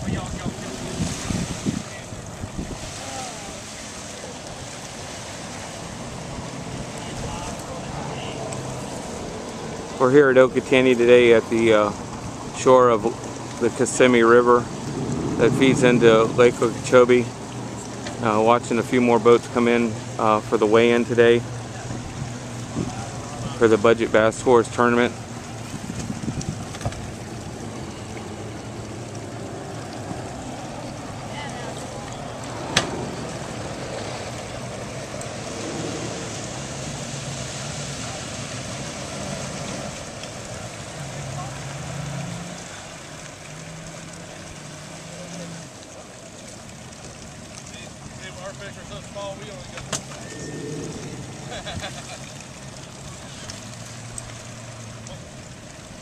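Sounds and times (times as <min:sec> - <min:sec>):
outboard motor running: 0:00.0 - 0:56.0.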